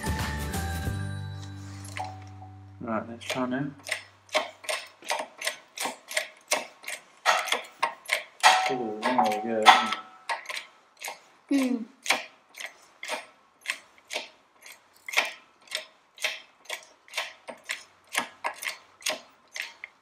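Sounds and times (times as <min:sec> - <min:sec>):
mechanical clicking: 0:03.2 - 0:11.2, 0:12.0 - 0:20.0.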